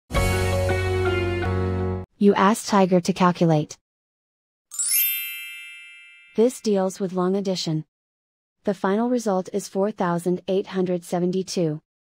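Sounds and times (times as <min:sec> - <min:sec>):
bright chime: 0:04.7 - 0:06.7.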